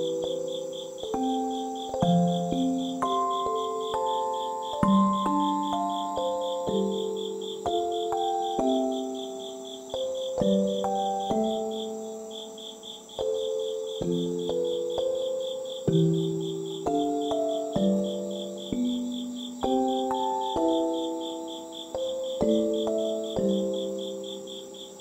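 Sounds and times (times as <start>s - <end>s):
insects chirping trill: 0.0s - 25.0s
soft keyboard music: 0.0s - 25.0s.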